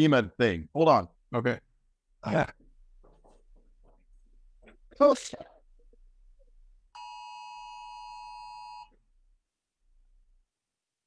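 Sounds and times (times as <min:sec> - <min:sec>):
phone emergency alert tone: 0:07.0 - 0:08.9.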